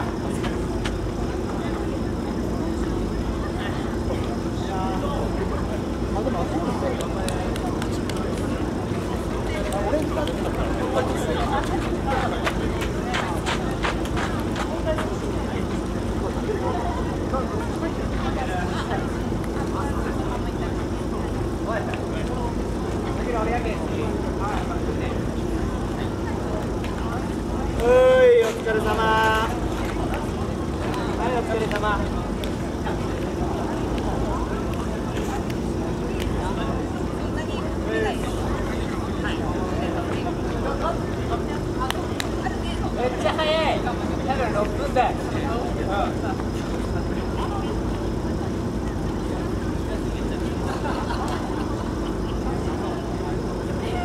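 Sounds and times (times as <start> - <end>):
crowd chatter: 0.0 - 54.0
steady low hum: 0.0 - 54.0.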